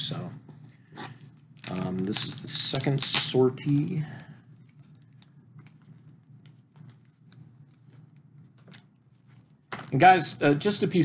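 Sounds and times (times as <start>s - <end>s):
comic books rustling: 0.4s - 10.2s
packaging clicks: 1.6s - 4.0s.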